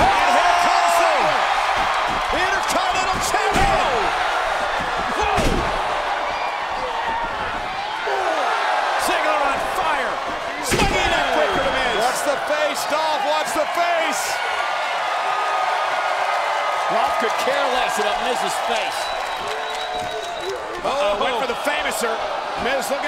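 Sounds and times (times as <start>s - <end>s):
arena crowd cheering and shouting: 0.0s - 23.0s
bodies slamming in wrestling ring: 3.1s - 6.1s.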